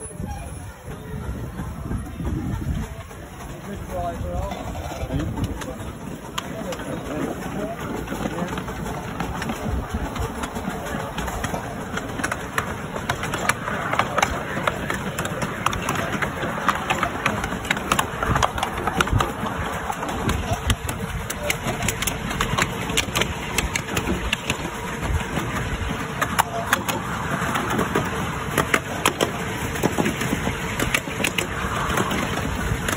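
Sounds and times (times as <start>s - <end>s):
train running rumble: 0.0s - 32.9s
wheels clicking over rail joints: 0.0s - 32.9s.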